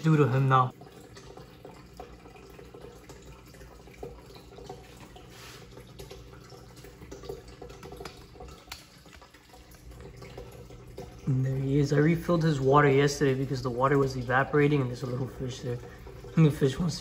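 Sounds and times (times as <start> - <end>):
low steady hum: 0.0 - 17.0
water trickling and dripping: 0.0 - 17.0.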